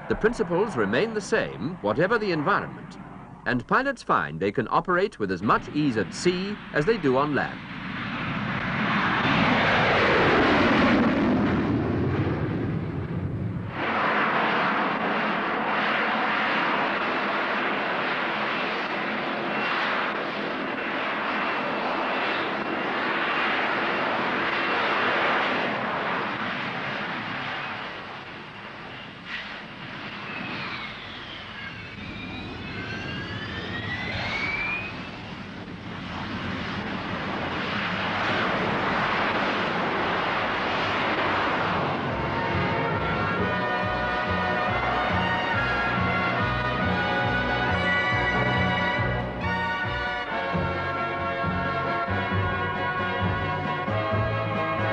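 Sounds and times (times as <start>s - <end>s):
jet engine roar: 0.0s - 54.9s
whining tones gliding: 27.5s - 36.4s, 40.0s - 54.9s.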